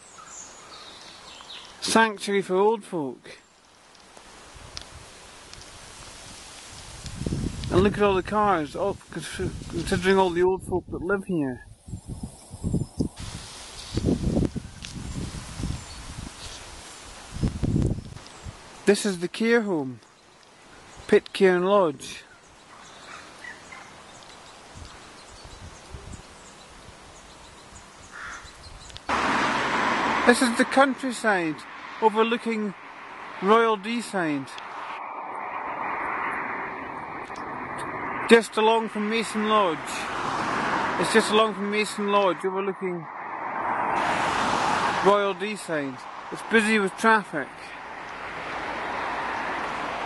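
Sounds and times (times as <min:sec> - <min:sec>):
wind through tree leaves: 0:00.0 - 0:50.0
wind buffeting microphone: 0:06.2 - 0:18.7, 0:24.7 - 0:27.6, 0:34.6 - 0:42.4.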